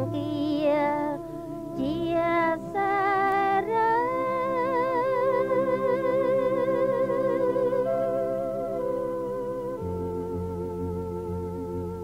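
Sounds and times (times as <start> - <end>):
woman singing with vibrato: 0.0 - 9.3.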